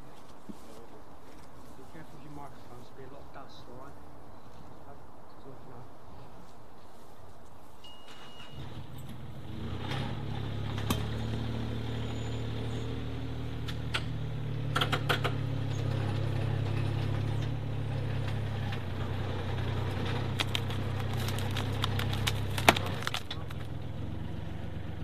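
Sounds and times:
dumper engine revving: 8.8s - 25.0s.

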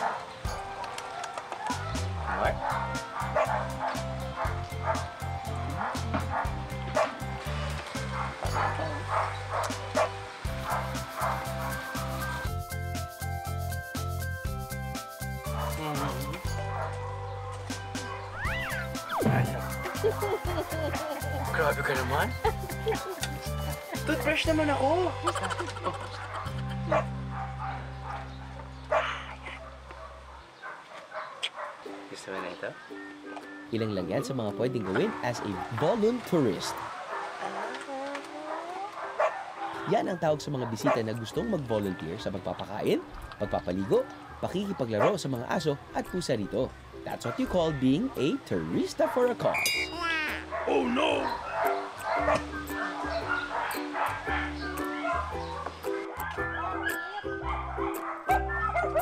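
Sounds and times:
background music with low notes: 0.0s - 30.4s, 31.5s - 59.0s
dogs barking and yipping: 0.0s - 46.2s, 47.1s - 59.0s
music with bass beat: 1.7s - 18.1s, 18.7s - 25.5s.

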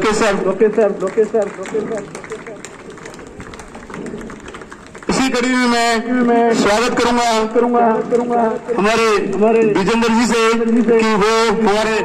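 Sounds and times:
audience clapping: 0.0s - 12.0s
crowd murmur: 1.0s - 5.2s.

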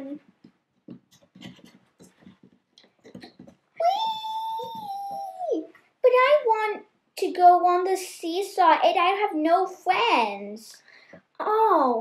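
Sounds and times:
child's high vocal sound: 3.8s - 5.7s.

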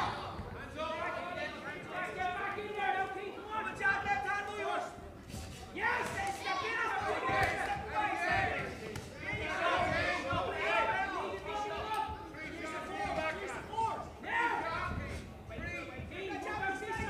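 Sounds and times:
people shouting in a large hall: 0.0s - 5.0s, 5.7s - 17.0s.

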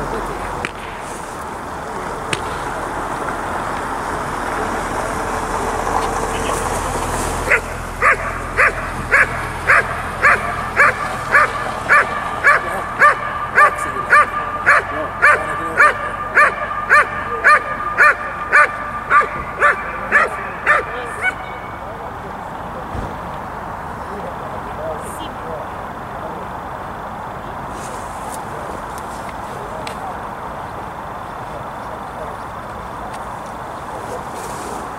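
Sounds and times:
steady rushing noise: 0.0s - 34.9s
dog barking: 7.4s - 21.8s.

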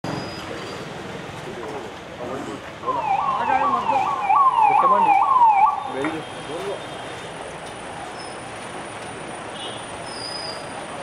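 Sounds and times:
street noise: 0.0s - 11.0s
police siren wailing: 2.8s - 6.0s.

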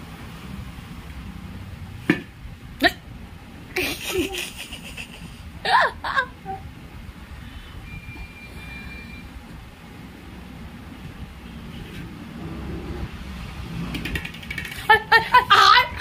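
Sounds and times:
low background rumble: 0.0s - 16.0s
faint thin high tone: 7.8s - 9.3s.

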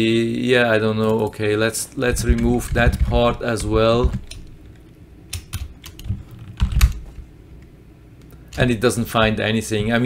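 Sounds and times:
computer keyboard typing: 2.1s - 4.5s, 5.3s - 7.0s.

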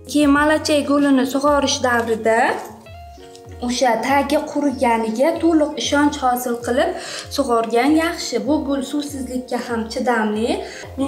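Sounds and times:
woman speaking: 0.0s - 2.8s, 3.6s - 11.0s
soft background music: 0.0s - 11.0s.

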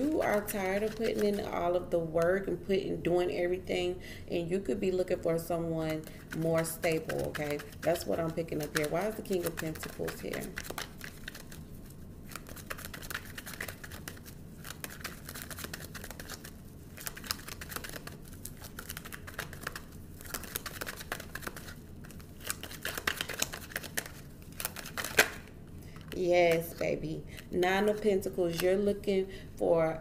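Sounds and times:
cards being shuffled: 0.0s - 1.5s, 6.2s - 28.8s.

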